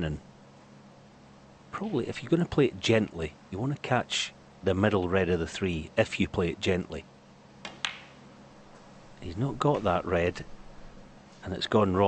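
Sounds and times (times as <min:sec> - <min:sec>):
snooker balls clicking: 0:07.6 - 0:08.2.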